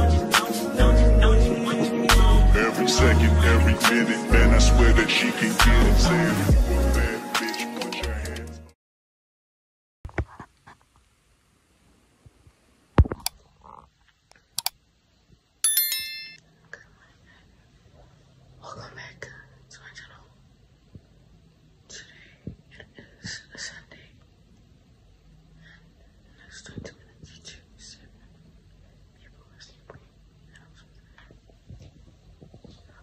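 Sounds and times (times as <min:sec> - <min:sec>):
bright bell ding: 0:15.6 - 0:16.4
woman whispering: 0:16.7 - 0:17.5, 0:18.6 - 0:20.4, 0:21.9 - 0:24.2, 0:25.6 - 0:28.4, 0:29.0 - 0:31.5.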